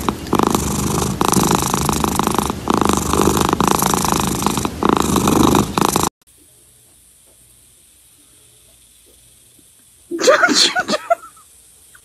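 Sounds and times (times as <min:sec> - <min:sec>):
cat purring loudly: 0:00.0 - 0:06.1.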